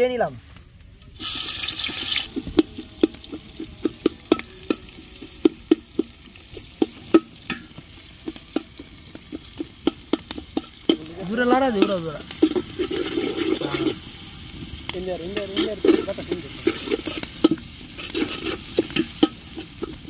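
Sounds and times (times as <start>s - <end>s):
onions sizzling in hot oil: 1.1s - 20.0s
metal spatula scraping pot: 1.2s - 20.0s.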